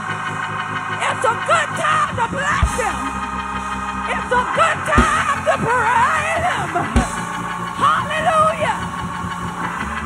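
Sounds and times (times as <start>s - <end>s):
low sustained backing: 0.0s - 10.0s
woman singing gospel: 1.0s - 9.1s.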